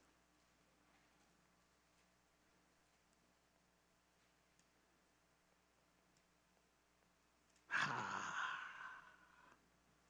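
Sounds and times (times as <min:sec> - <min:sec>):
man sighing: 0:07.7 - 0:09.6.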